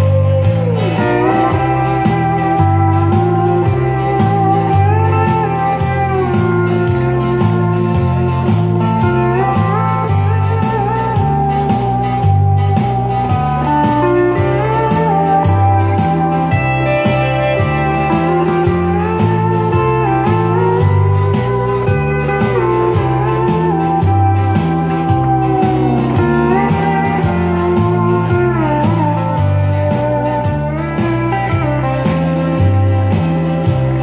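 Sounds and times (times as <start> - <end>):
bass line: 0.0 - 34.0
pedal steel guitar melody: 0.0 - 34.0
steady drum beat: 0.0 - 34.0
strummed acoustic guitar: 0.0 - 34.0.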